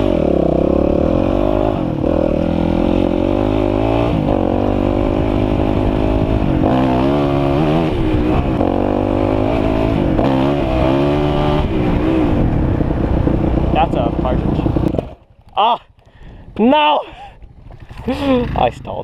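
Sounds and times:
dirt bike engine revving: 0:00.0 - 0:15.2.

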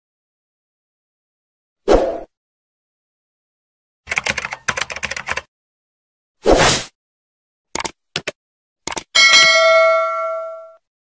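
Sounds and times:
keyboard key clicks: 0:07.8 - 0:09.1.

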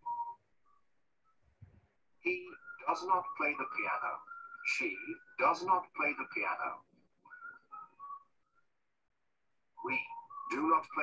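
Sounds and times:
faint whistle-like chirps: 0:00.0 - 0:11.0.

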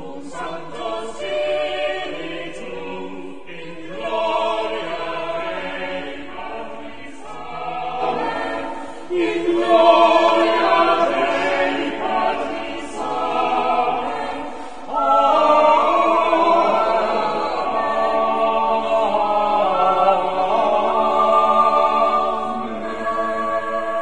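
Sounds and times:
church choir singing: 0:00.0 - 0:24.0.

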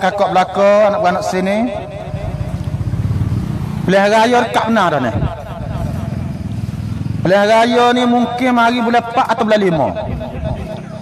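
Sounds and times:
man speaking: 0:00.0 - 0:02.4, 0:03.9 - 0:05.9, 0:07.2 - 0:11.0
vehicle engine pulsing: 0:00.0 - 0:11.0.

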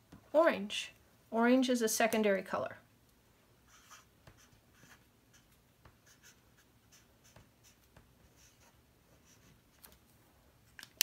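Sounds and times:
marker scratching on paper: 0:03.7 - 0:09.7.

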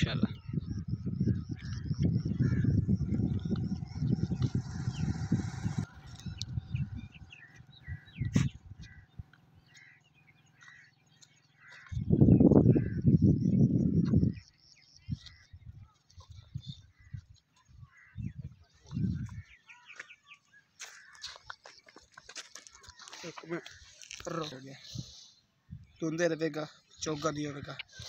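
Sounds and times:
small birds chirping: 0:00.0 - 0:28.0
loud low rumbling: 0:02.1 - 0:09.0.

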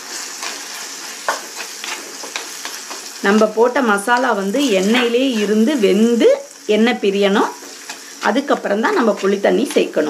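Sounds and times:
spices sizzling in oil: 0:00.0 - 0:10.0.

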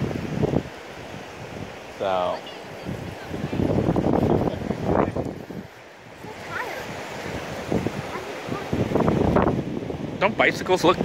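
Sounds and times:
ocean surf: 0:00.0 - 0:11.0
wind buffeting microphone: 0:00.0 - 0:11.0.

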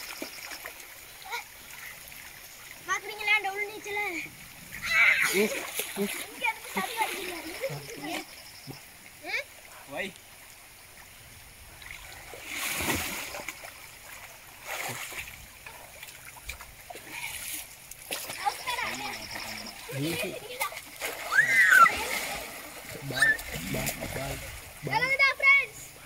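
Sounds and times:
water splashing: 0:00.0 - 0:26.0
voices calling and talking: 0:01.2 - 0:10.9, 0:17.0 - 0:26.0.

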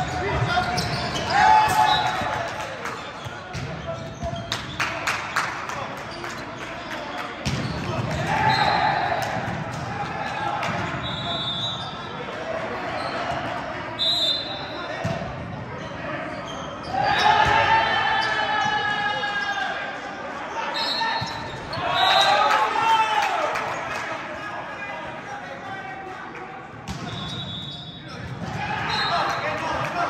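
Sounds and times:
sneakers squeaking on floor: 0:00.0 - 0:04.9, 0:06.1 - 0:09.6, 0:10.2 - 0:12.2, 0:12.9 - 0:19.7, 0:20.6 - 0:22.4, 0:26.9 - 0:29.4
players shouting: 0:00.0 - 0:05.2, 0:07.7 - 0:26.4, 0:28.2 - 0:30.0.

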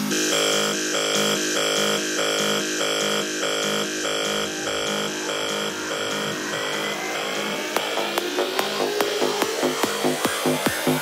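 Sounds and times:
rising synth sweep: 0:00.0 - 0:10.2
pulsing synthesizer chords: 0:00.0 - 0:11.0.

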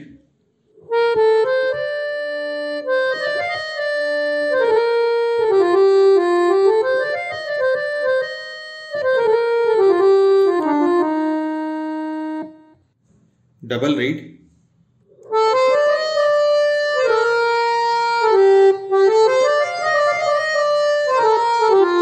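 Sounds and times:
harmonium melody: 0:00.8 - 0:12.9, 0:15.2 - 0:22.0.

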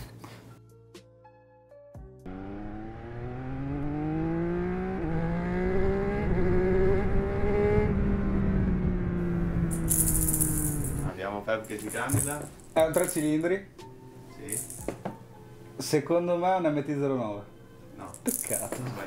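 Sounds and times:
motorcycle engine revving: 0:02.3 - 0:11.1.

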